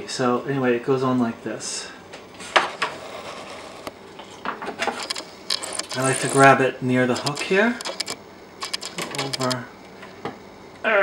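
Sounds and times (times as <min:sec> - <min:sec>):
small metallic clicks: 0:04.8 - 0:06.5, 0:07.2 - 0:09.6.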